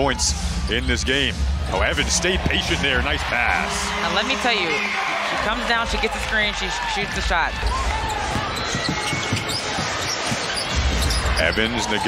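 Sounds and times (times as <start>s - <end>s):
arena crowd noise: 0.0s - 12.0s
sneaker squeaks: 8.1s - 11.8s
basketball dribbling on hardwood: 8.3s - 11.1s.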